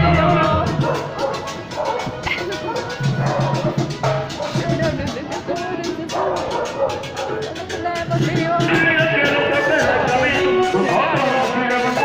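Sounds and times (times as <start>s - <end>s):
street band playing: 0.0s - 12.0s
dog barking: 0.6s - 4.8s, 6.1s - 7.8s.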